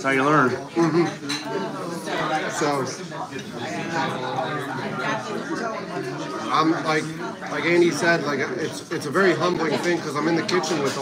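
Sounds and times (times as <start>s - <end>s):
cutlery clinking on plates: 0.8s - 1.7s, 10.4s - 11.0s.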